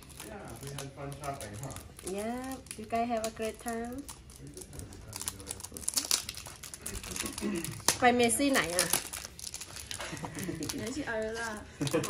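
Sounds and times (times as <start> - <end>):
packaging crinkling and rustling: 0.0 - 12.0.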